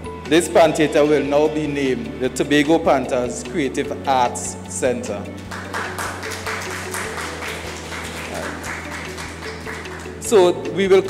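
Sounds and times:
background music of low notes: 0.0 - 11.0
audience applauding: 5.5 - 10.4.

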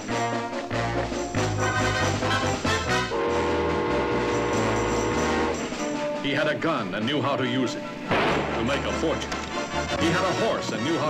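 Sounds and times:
low orchestral music: 0.0 - 11.0
steam locomotive whistle: 1.7 - 5.8.

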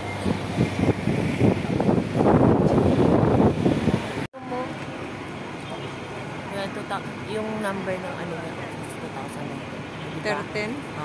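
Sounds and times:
bus and street traffic noise: 0.0 - 11.0.

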